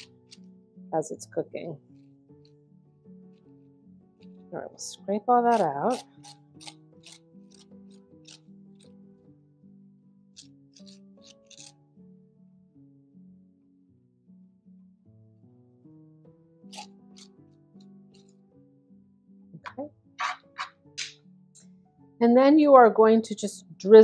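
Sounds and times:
spoon scraping squash: 0.0 - 0.4, 5.4 - 8.9, 10.4 - 11.7, 16.7 - 17.4
quiet background music: 0.0 - 24.0.

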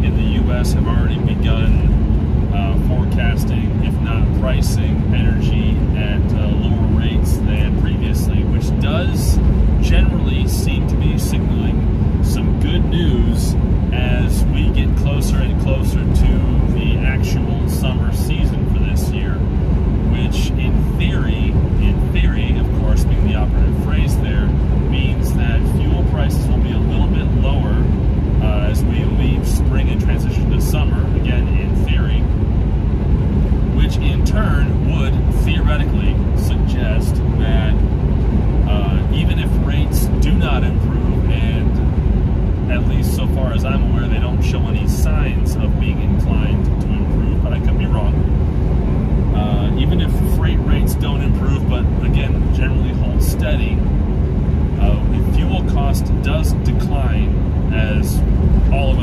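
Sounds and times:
man talking: 0.0 - 32.4, 33.7 - 37.9, 38.6 - 41.9, 42.6 - 48.3, 49.3 - 53.9, 54.8 - 59.0
truck engine and road noise: 0.0 - 59.0.

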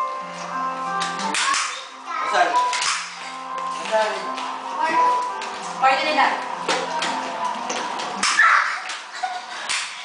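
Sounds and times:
sharp slaps: 1.0 - 1.9, 2.7 - 3.2, 8.2 - 10.0.

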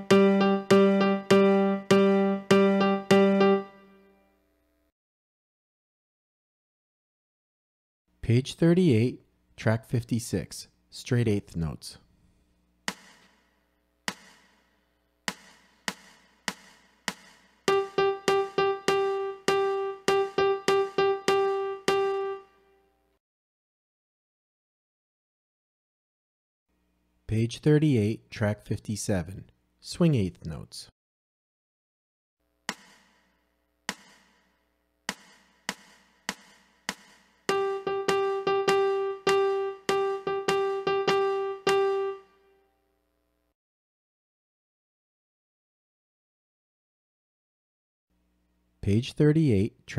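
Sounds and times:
piano repeating one note: 0.0 - 4.1, 17.7 - 22.6, 37.5 - 42.6
count-off clicks: 17.7 - 22.5, 37.5 - 42.3.

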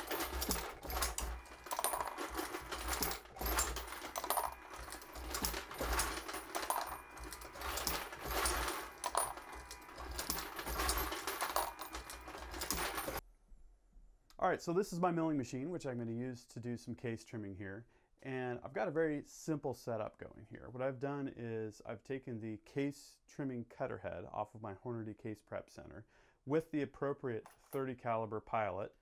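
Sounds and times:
brass cases clinking: 0.0 - 13.2.

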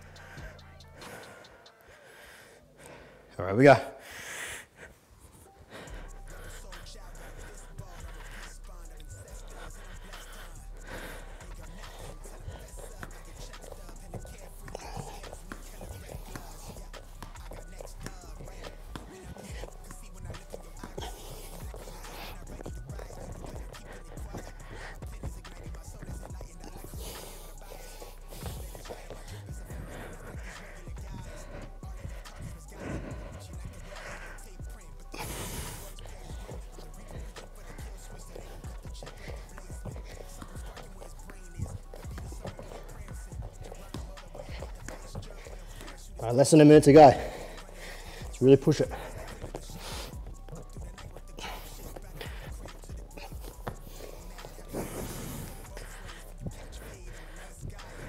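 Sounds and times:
man breathing hard: 0.0 - 58.0.

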